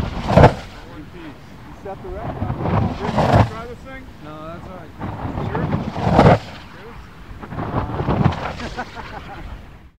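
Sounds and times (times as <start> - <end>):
rushing bursts of air: 0.0 - 9.9.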